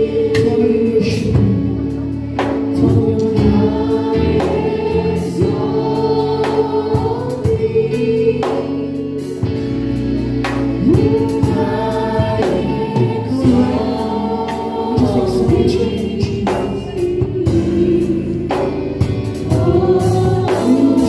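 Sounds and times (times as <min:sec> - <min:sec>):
gospel choir singing: 0:00.0 - 0:21.0
instrumental backing: 0:00.0 - 0:21.0.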